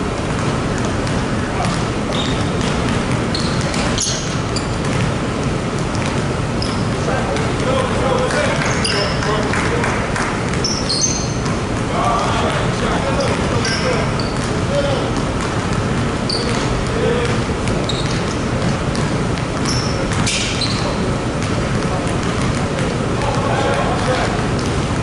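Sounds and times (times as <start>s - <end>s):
basketballs bouncing on hardwood: 0.1s - 25.0s
sneaker squeaks: 0.3s - 7.8s, 8.4s - 9.4s, 10.4s - 11.9s, 12.5s - 24.7s.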